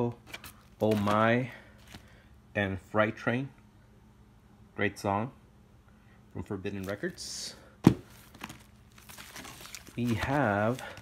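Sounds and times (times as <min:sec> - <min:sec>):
record sleeves crinkling: 0:00.2 - 0:02.2, 0:06.8 - 0:07.2, 0:07.9 - 0:11.0.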